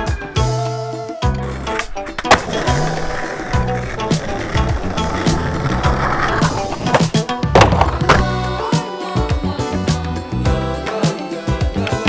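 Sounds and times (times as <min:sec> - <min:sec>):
music track: 0:00.0 - 0:12.0
skateboard wheels rolling on concrete: 0:01.4 - 0:08.5
skateboard clacking: 0:01.7 - 0:08.4.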